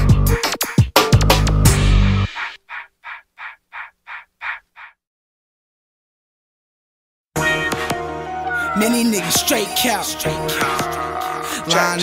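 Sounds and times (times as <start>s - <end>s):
music: 0.0s - 2.4s, 7.4s - 12.0s
crow cawing: 2.4s - 5.0s.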